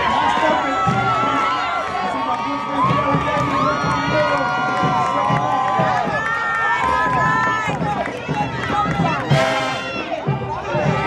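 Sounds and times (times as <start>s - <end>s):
parade crowd talking and cheering: 0.0s - 11.0s.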